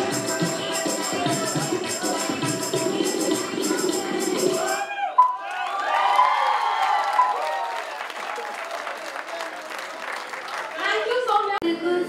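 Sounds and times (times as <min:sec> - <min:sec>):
cheering voices: 0:04.5 - 0:11.3
audience applauding: 0:05.2 - 0:11.2.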